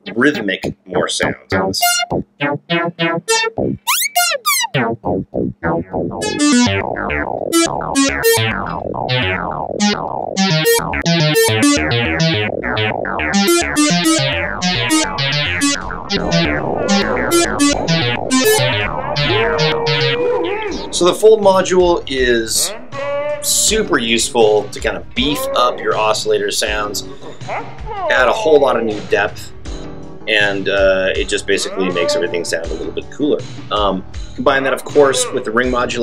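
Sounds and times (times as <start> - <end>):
synthesizer plucky notes: 0.0 - 21.1.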